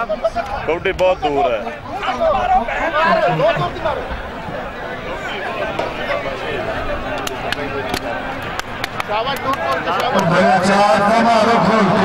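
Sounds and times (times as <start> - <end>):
crowd chatter: 0.0 - 12.0
men talking: 0.0 - 12.0.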